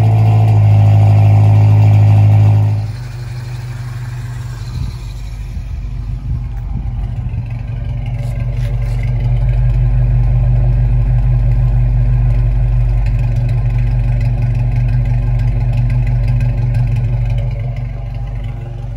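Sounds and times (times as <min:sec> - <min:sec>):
pickup engine idling: 0:00.0 - 0:18.9.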